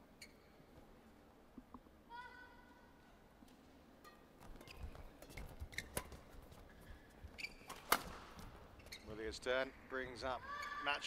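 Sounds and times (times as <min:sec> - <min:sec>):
shoes squeaking on court: 0:00.2 - 0:00.9, 0:04.0 - 0:09.3.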